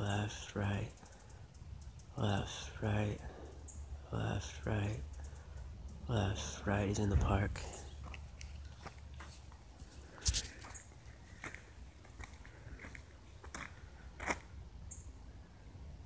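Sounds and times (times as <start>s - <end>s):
low steady rumble: 0.0s - 16.0s.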